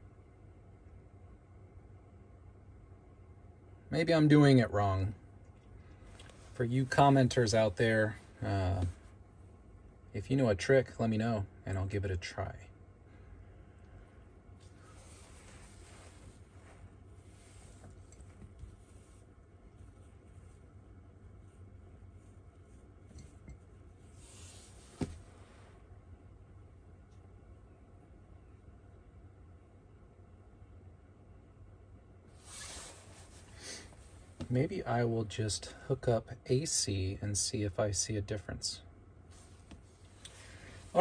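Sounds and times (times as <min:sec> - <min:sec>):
steady low hum: 0:00.0 - 0:41.0
soft handling rustles: 0:05.5 - 0:09.3, 0:13.9 - 0:25.8, 0:32.3 - 0:34.6, 0:39.3 - 0:41.0.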